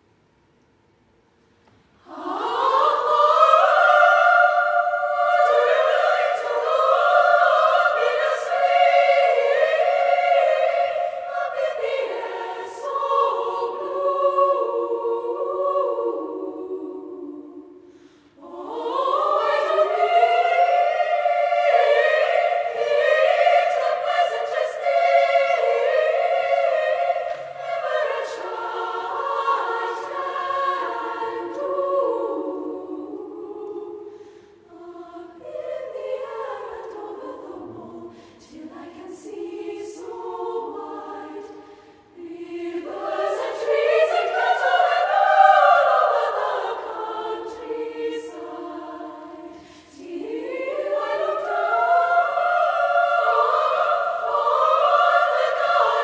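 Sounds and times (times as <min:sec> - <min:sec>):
girls' choir singing: 0:02.0 - 0:56.0.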